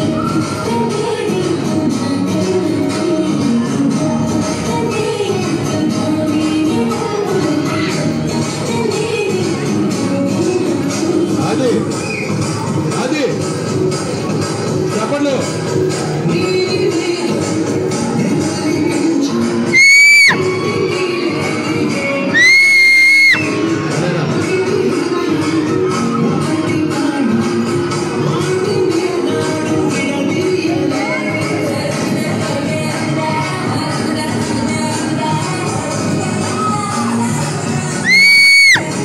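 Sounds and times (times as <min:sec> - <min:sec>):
dance music over loudspeaker: 0:00.0 - 0:39.0
shrill whistle: 0:12.0 - 0:12.4, 0:22.4 - 0:23.5
child shrieking: 0:22.4 - 0:23.4, 0:38.0 - 0:38.8.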